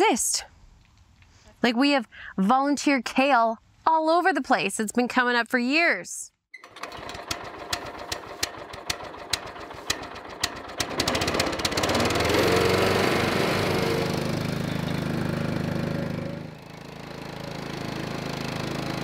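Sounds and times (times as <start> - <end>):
engine starter clicks: 6.6 - 12.2
small petrol engine running: 6.6 - 19.0.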